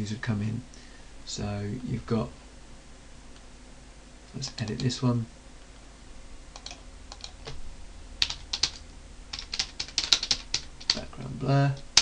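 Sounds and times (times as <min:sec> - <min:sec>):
typing on computer keyboard: 0:04.5 - 0:04.9, 0:06.6 - 0:07.4, 0:08.2 - 0:11.0.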